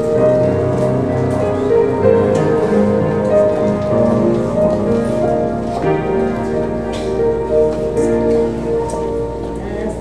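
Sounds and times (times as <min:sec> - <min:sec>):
keyboard accompaniment: 0:00.0 - 0:10.0.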